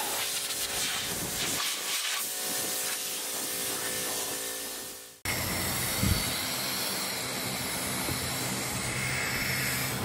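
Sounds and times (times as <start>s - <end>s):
spray paint can hissing: 0.0s - 5.2s.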